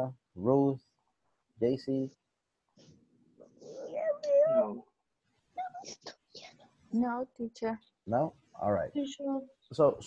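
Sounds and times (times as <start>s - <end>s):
voices over video call: 0.0s - 2.3s, 3.4s - 10.0s.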